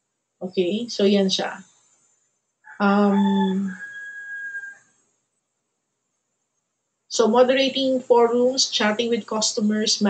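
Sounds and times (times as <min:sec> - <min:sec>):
woman saying um: 0:00.4 - 0:01.6, 0:02.8 - 0:03.8, 0:07.1 - 0:10.0.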